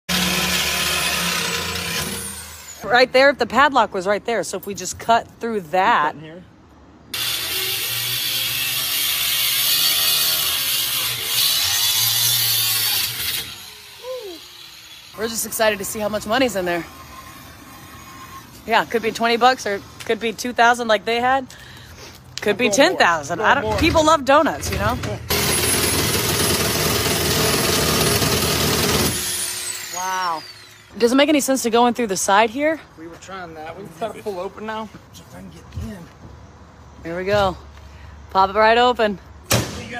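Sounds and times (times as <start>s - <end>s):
angle grinder cutting steel: 0.1s - 2.9s, 7.2s - 20.1s, 25.3s - 31.0s.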